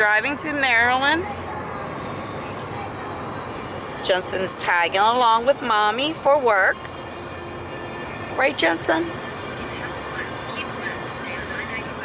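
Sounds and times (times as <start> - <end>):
road and tyre noise in car: 0.0 - 12.0.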